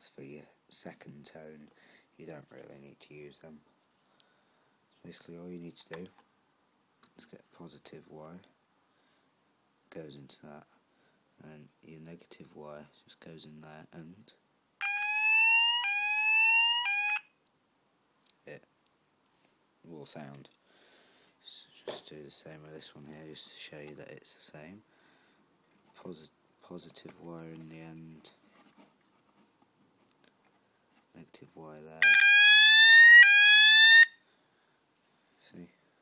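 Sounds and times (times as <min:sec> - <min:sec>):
fire alarm sweep tone: 0:14.8 - 0:17.2, 0:32.0 - 0:34.2.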